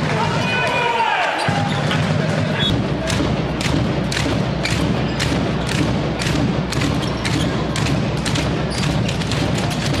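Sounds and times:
crowd noise in a hall: 0:00.0 - 0:10.0.

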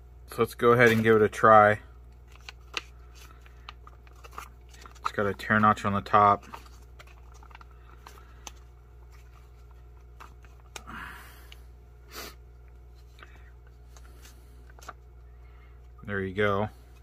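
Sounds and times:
steady low hum: 0:00.0 - 0:17.0
foil pouch crinkling: 0:02.2 - 0:11.0.

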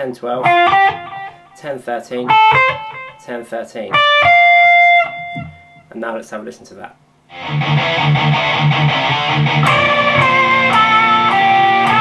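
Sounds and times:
electric guitar notes: 0:00.4 - 0:01.6, 0:02.3 - 0:03.3, 0:03.9 - 0:05.9, 0:07.3 - 0:12.0.

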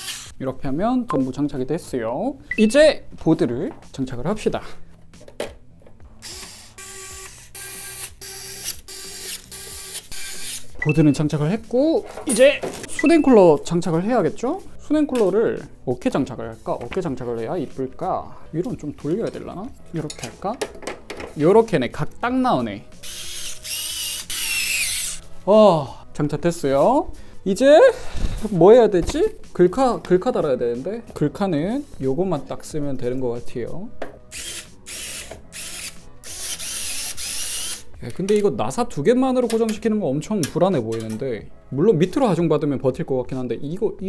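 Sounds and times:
electric screwdriver whining: 0:06.2 - 0:10.6, 0:23.0 - 0:25.2, 0:34.3 - 0:37.9
screwdriver ratcheting: 0:34.3 - 0:37.8.

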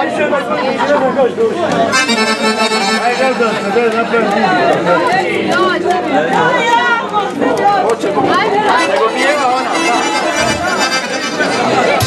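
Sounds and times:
guests chattering: 0:00.0 - 0:12.0
accordion: 0:01.8 - 0:05.5, 0:08.3 - 0:12.0
low bass beat: 0:02.0 - 0:04.7, 0:09.1 - 0:12.0.

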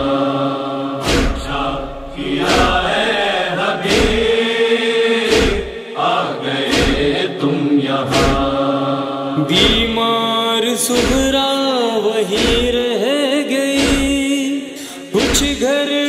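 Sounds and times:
male chorus chanting: 0:00.0 - 0:16.0
deep thump: 0:01.0 - 0:03.0, 0:03.9 - 0:04.4, 0:05.3 - 0:05.8, 0:06.7 - 0:07.1, 0:08.1 - 0:08.5, 0:12.4 - 0:12.8, 0:13.8 - 0:14.2.

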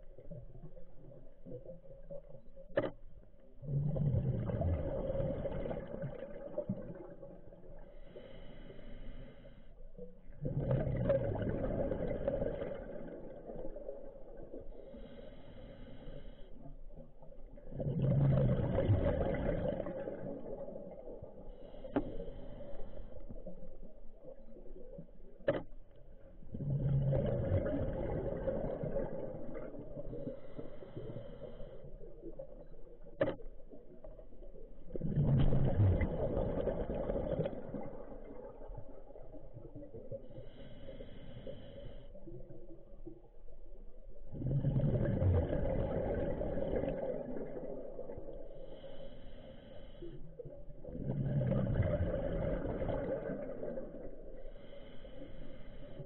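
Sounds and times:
exhaled bubbles rumbling underwater: 0:00.0 - 0:56.0.

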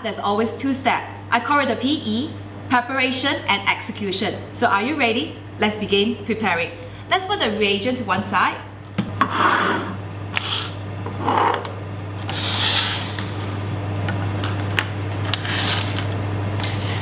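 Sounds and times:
steady low hum: 0:00.0 - 0:17.0
apparatus scraping on benchtop: 0:12.2 - 0:13.6, 0:15.3 - 0:17.0.

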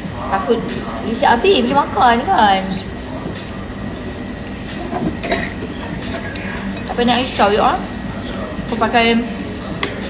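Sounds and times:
restaurant dining room rumble: 0:00.0 - 0:10.0.

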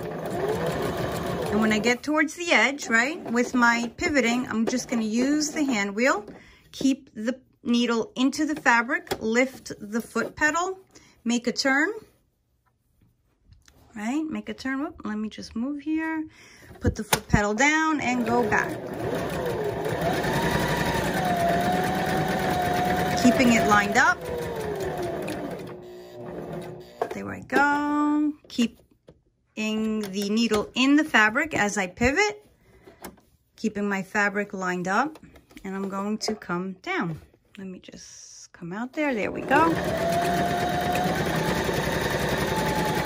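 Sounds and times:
electric sewing machine running: 0:00.0 - 0:01.9, 0:18.1 - 0:27.1, 0:39.4 - 0:43.0.

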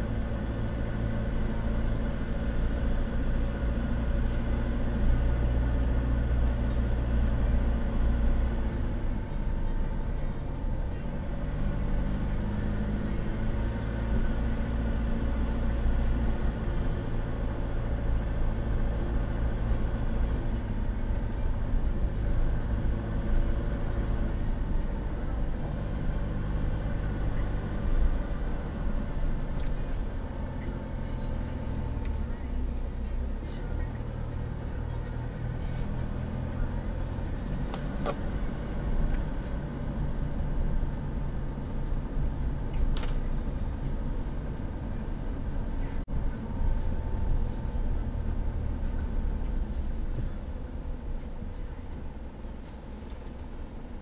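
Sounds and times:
car engine and tyre hum: 0:00.0 - 0:54.0.

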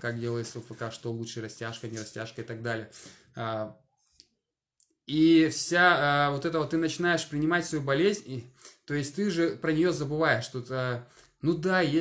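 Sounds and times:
man speaking: 0:00.0 - 0:03.8, 0:05.1 - 0:12.0.

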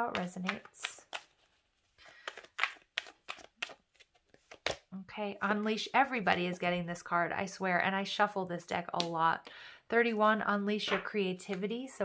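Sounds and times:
cards being shuffled by hand: 0:00.0 - 0:04.9.

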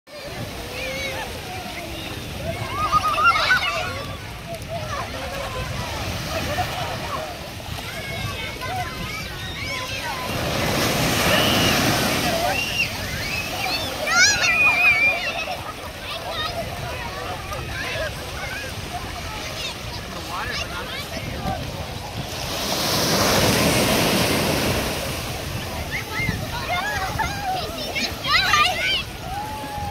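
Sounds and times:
wave breaking on beach: 0:00.1 - 0:29.9.

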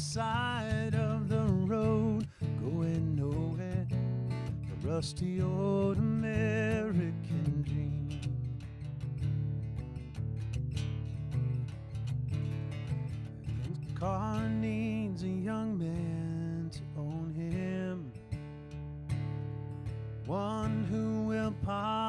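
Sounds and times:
man singing: 0:00.0 - 0:08.5, 0:13.6 - 0:18.3, 0:20.2 - 0:22.0
acoustic guitar strumming: 0:00.0 - 0:22.0.

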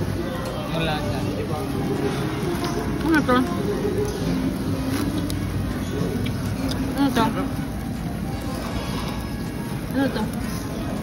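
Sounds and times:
murmur of voices: 0:00.0 - 0:11.0
restaurant background noise: 0:00.0 - 0:11.0.

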